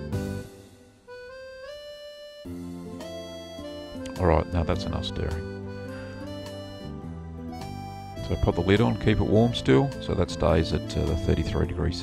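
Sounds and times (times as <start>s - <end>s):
fuller music with low notes: 0.0s - 12.0s
thin melody line: 0.0s - 12.0s.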